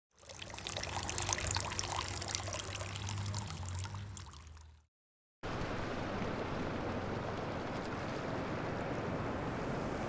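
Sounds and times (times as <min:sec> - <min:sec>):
water pouring into a glass: 0:00.1 - 0:04.9.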